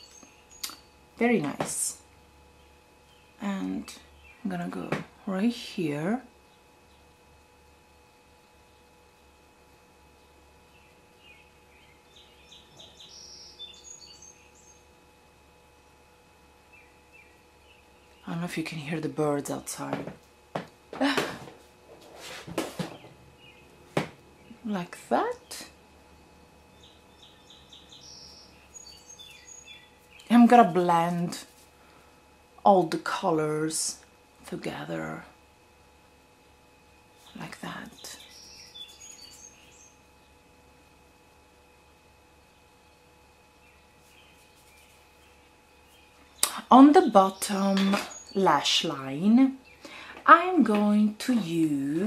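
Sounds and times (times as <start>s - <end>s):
faint birds chirping: 0.0s - 5.5s, 6.3s - 32.6s, 36.1s - 52.0s
rustling close to microphone: 21.4s - 23.2s, 44.0s - 45.3s.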